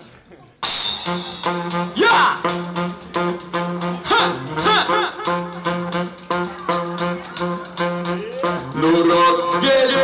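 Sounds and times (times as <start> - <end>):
brass band playing chords: 0.6 - 10.0.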